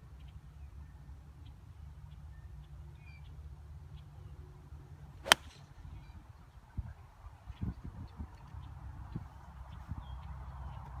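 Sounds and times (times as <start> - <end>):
golf club striking ball: 5.2 - 5.7.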